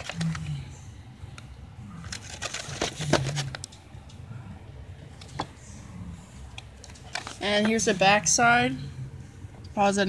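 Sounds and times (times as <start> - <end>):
packaging crinkles and clicks: 0.0 - 0.6, 1.3 - 3.8.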